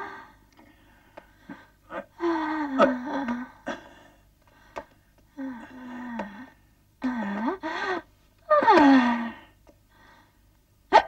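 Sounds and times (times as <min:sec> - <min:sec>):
woman moaning: 0:01.9 - 0:03.6, 0:05.4 - 0:09.5.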